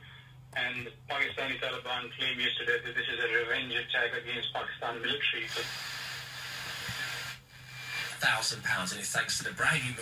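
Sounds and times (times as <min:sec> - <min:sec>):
radio static hiss: 0:00.6 - 0:10.0.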